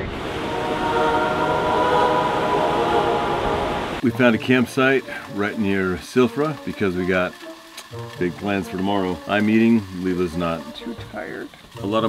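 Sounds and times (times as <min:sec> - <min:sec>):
steady rushing noise: 0:00.0 - 0:07.0
held chord music swell: 0:00.0 - 0:11.0.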